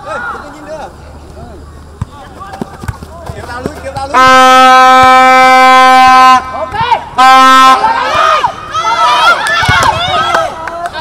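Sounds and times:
horn blast: 0:04.1 - 0:06.6, 0:07.2 - 0:08.0.

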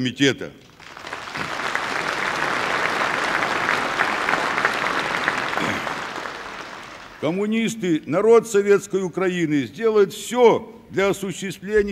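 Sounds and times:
large crowd applauding: 0:00.7 - 0:07.4.

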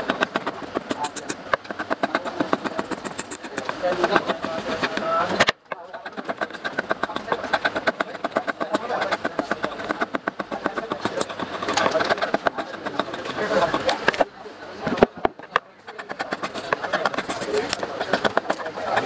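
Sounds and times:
blade scraping wood: 0:00.0 - 0:19.0.

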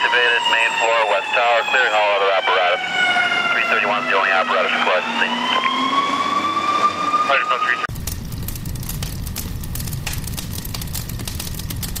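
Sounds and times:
fire truck siren wailing: 0:00.0 - 0:07.9
steady low rumble: 0:07.6 - 0:12.0.

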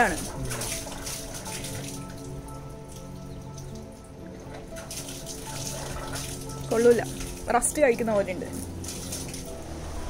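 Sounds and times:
water trickling into stone basin: 0:00.0 - 0:09.9.

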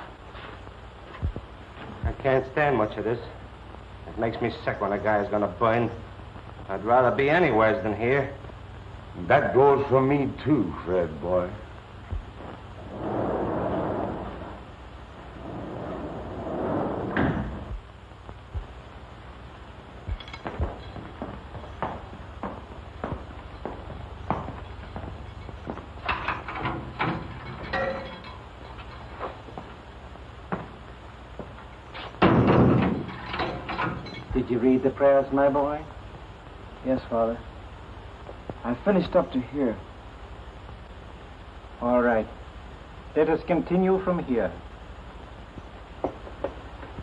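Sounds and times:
footsteps on hard floor: 0:20.4 - 0:25.9, 0:30.5 - 0:30.8
steel doors clanking and sliding: 0:26.0 - 0:29.1, 0:32.1 - 0:34.3.

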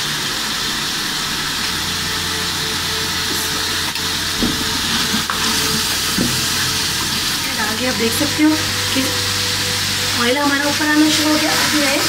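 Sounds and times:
food frying in oil: 0:00.0 - 0:12.0.

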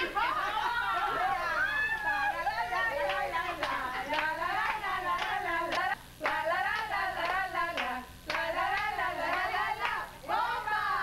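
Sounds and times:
women singing together: 0:00.0 - 0:11.0
hand claps: 0:03.0 - 0:10.0.

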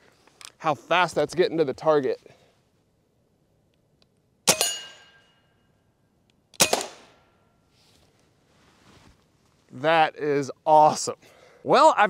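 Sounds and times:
bullet clanging on steel target: 0:04.5 - 0:05.4
air rifle shot: 0:06.6 - 0:07.2.

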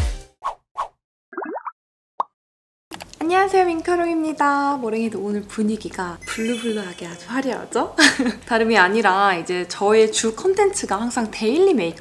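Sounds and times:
rising pitch glide effects: 0:06.2 - 0:07.6.

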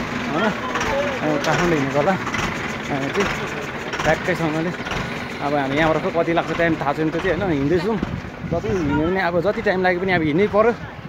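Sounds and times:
steady background noise: 0:00.0 - 0:11.0
man talking outdoors: 0:00.2 - 0:11.0.

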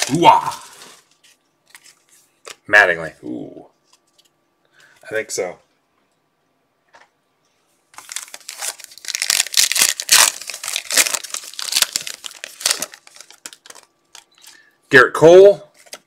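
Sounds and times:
wrapper crinkling: 0:00.0 - 0:02.2, 0:08.0 - 0:14.6
cards rustling: 0:00.0 - 0:02.6, 0:08.0 - 0:14.6, 0:15.7 - 0:16.0.

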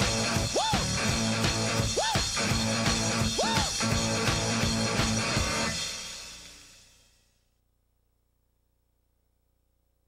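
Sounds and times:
rock music with guitar and drums: 0:00.0 - 0:06.7.

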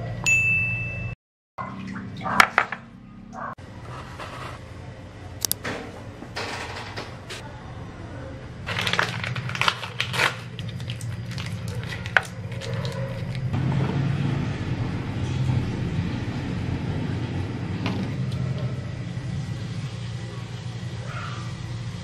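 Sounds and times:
low steady hum: 0:00.0 - 0:22.0
plastic sachet crinkling: 0:08.7 - 0:13.5.

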